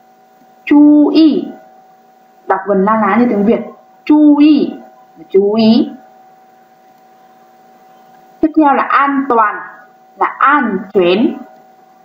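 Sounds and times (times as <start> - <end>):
faint steady tone: 0.0 - 12.0
steady low hiss: 0.0 - 12.0.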